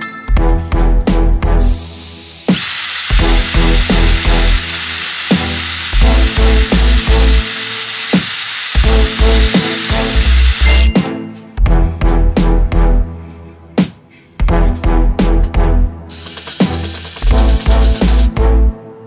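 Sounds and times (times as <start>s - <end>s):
background music with beat: 0.0s - 1.9s, 8.8s - 18.8s
electric drill whine: 2.0s - 11.0s, 16.1s - 18.4s.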